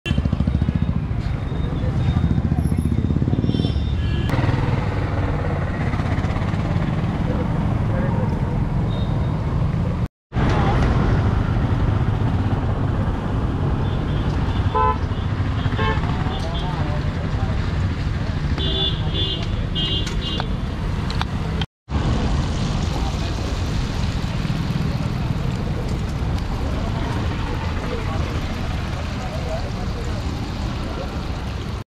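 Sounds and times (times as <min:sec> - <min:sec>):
traffic running: 0:00.1 - 0:31.8
people's voices: 0:22.8 - 0:31.8.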